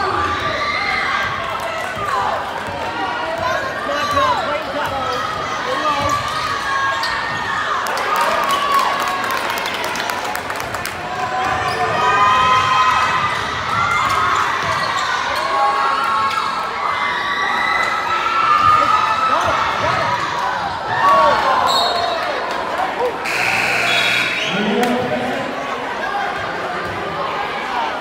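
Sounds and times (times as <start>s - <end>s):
players and spectators shouting: 23.0s - 28.0s
steady signal tone: 23.3s - 24.6s.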